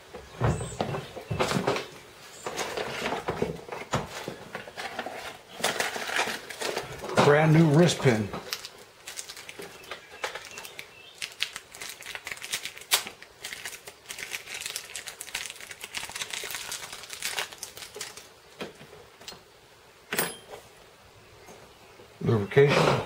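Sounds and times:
plastic wrapper crinkling: 5.5 - 18.5.

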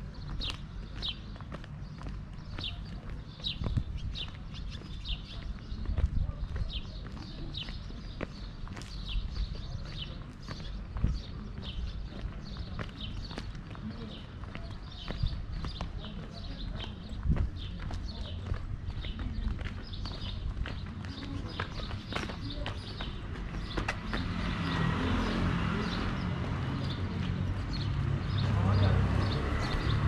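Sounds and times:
footsteps on stone: 0.0 - 24.8.

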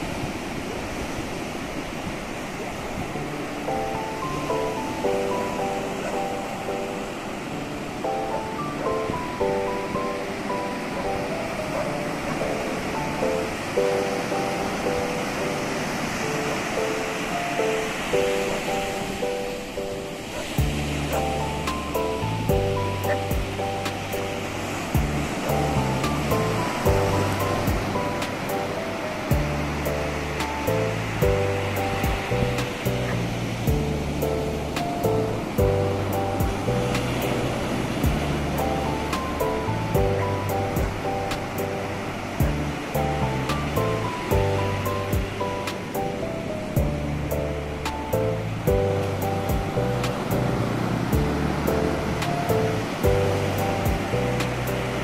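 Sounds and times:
calm piano music: 0.0 - 55.0
ocean surf breaking on beach: 0.0 - 55.0.

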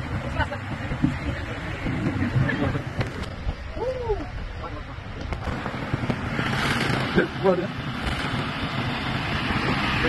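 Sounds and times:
water-slide conveyor rumbling: 0.0 - 10.0.

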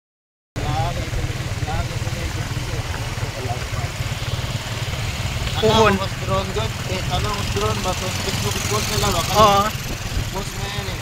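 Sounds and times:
faint voices: 0.6 - 4.2
vehicle rumble from on board: 0.6 - 11.0.

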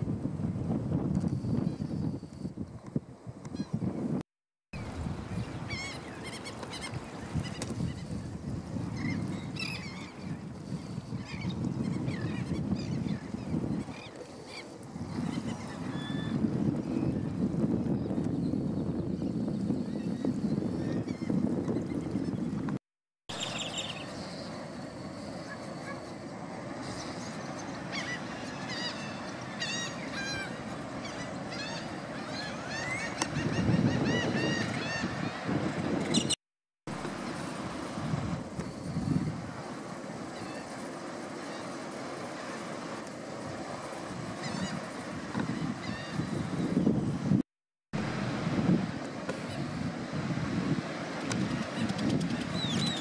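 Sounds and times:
wind on microphone: 0.0 - 4.2, 4.8 - 53.0
chirping bird calls: 23.3 - 24.6
outdoor ambience: 23.3 - 33.4, 36.9 - 45.6.

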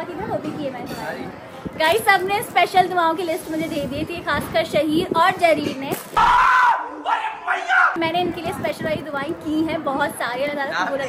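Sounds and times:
people cheering and yelling: 6.2 - 8.0.

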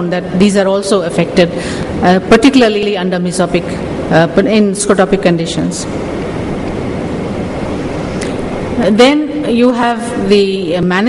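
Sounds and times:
recording hiss and room noise: 0.0 - 11.0.

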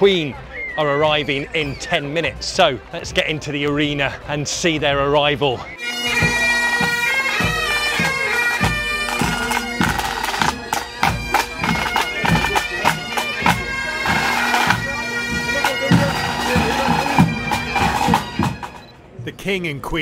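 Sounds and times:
bagpipes playing melody over drones: 5.6 - 18.9
marching drums beating: 5.8 - 18.9.

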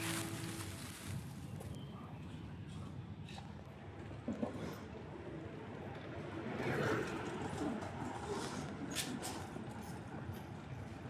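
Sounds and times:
street background hum: 0.0 - 11.0.

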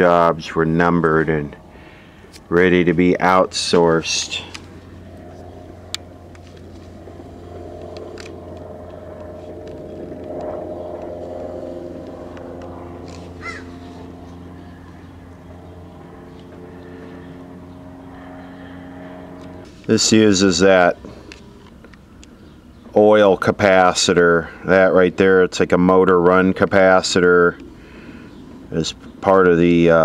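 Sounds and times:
engine-like drone: 0.0 - 30.0.

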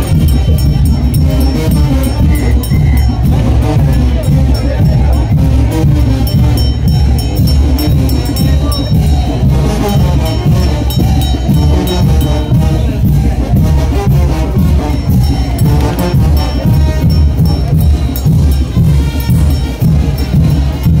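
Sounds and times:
brass band playing: 0.0 - 21.0.

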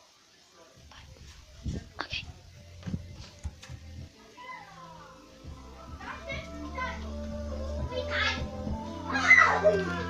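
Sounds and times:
music playing: 0.9 - 10.0
children talking in another room: 4.1 - 10.0.

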